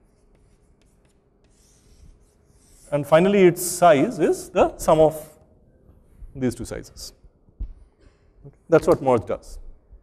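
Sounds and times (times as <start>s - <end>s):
chalk scratching on blackboard: 0.0s - 3.4s.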